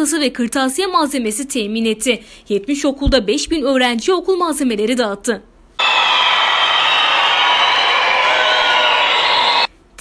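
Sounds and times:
audience applauding: 5.8s - 9.7s
people cheering: 5.8s - 9.7s.

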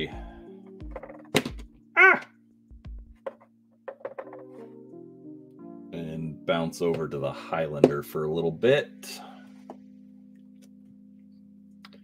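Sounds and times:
soft background music: 0.0s - 12.0s
miniature knocking on desk: 3.2s - 4.5s.

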